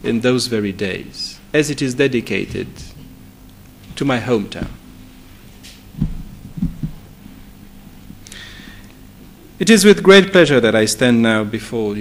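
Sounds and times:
faint steady hum: 0.0s - 12.0s
soft low thumps: 5.9s - 7.4s.

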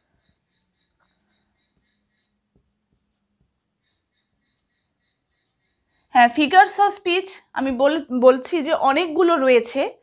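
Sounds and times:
marker pen writing on whiteboard: 0.0s - 6.6s.

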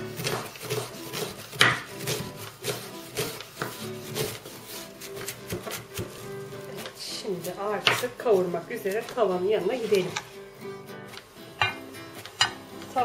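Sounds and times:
knife chopping on wooden board: 0.0s - 6.2s, 7.8s - 8.1s, 11.6s - 11.8s
background music: 0.0s - 13.0s.

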